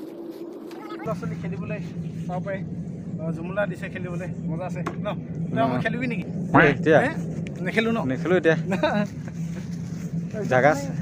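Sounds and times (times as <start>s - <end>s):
steady low hum: 0.0s - 11.0s
man talking: 3.2s - 8.8s.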